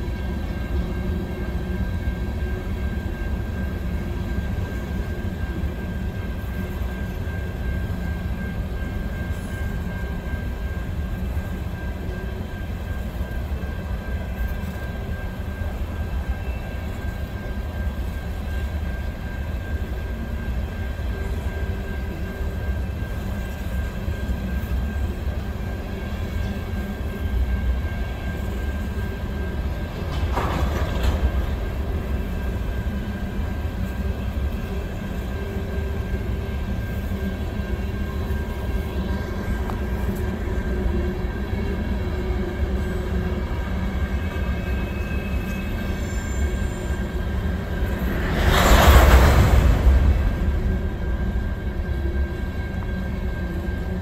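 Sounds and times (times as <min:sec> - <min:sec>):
freight train wheels rumbling on rail: 0:00.0 - 0:54.0
loud burst of noise: 0:47.6 - 0:52.5.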